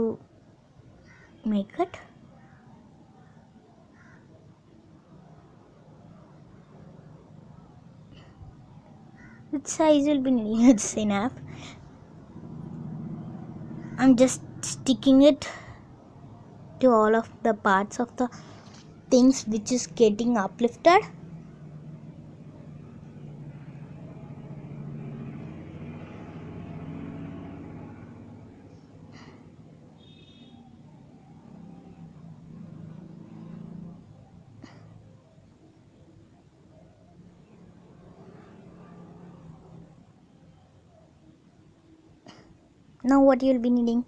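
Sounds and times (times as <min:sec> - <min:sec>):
motor vehicle engine rumble: 0:10.7 - 0:16.8
vehicle engine running: 0:10.8 - 0:16.7, 0:19.6 - 0:30.2.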